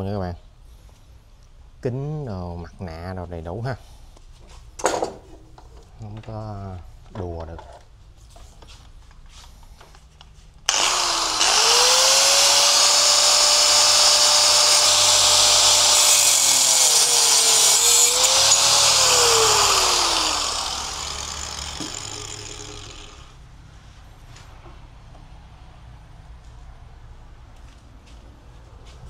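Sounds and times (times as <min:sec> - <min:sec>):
angle grinder whining: 0:10.7 - 0:23.4
grinder disc cutting steel: 0:10.7 - 0:23.4.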